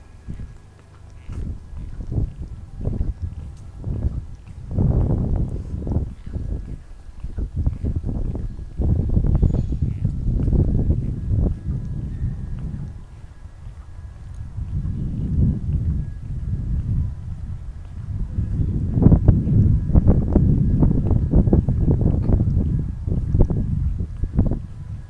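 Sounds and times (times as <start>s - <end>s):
footsteps on pavement: 0.0s - 25.0s
wind rumble on microphone: 0.0s - 25.0s.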